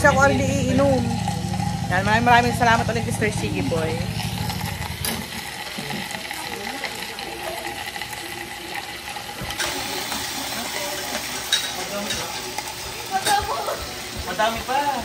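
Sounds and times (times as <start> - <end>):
low hum: 0.0 - 6.2
background chatter: 0.0 - 15.0
meat sizzling in a pan: 2.8 - 15.0
metal tongs stirring meat: 4.2 - 15.0.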